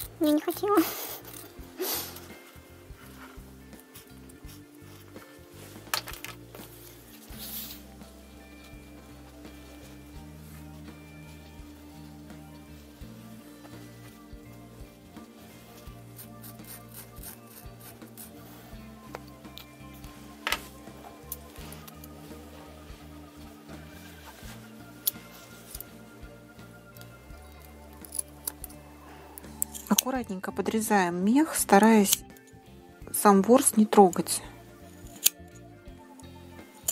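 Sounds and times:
background music: 0.0 - 36.9
scissors snipping fur: 16.2 - 18.4.

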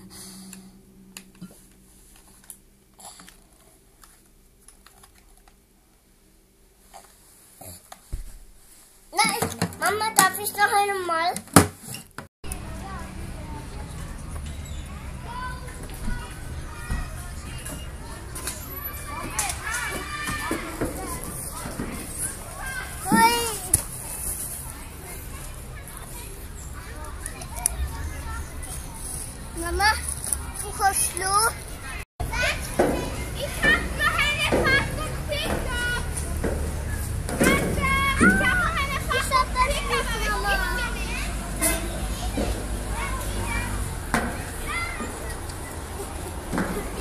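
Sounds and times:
children playing: 9.1 - 11.4, 12.4 - 47.0.

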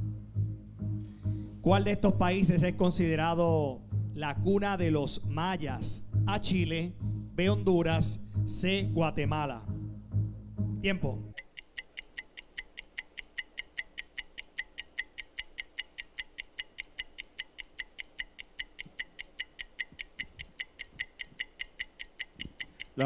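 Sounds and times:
ticking clock: 11.3 - 23.0.

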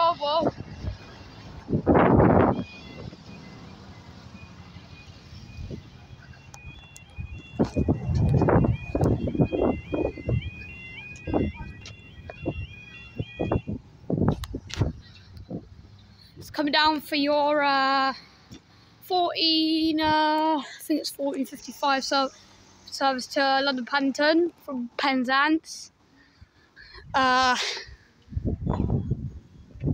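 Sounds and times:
warbling two-pitch alarm: 2.0 - 13.8
thumps and rumbles: 13.4 - 15.8.

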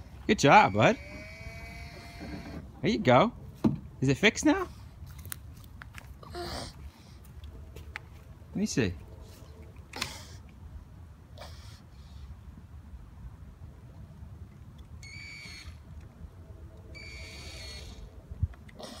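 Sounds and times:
toy drill buzzing: 17.0 - 18.0.

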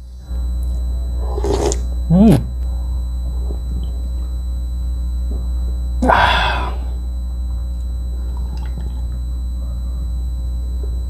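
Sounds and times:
low electrical hum: 0.0 - 11.0
breathy exhale: 6.0 - 7.0.

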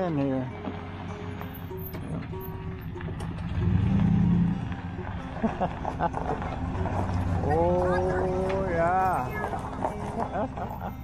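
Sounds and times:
pickup truck engine running: 0.6 - 11.0.

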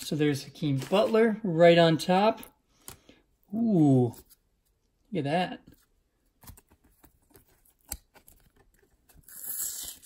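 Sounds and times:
tape being peeled off plastic: 6.4 - 10.0.

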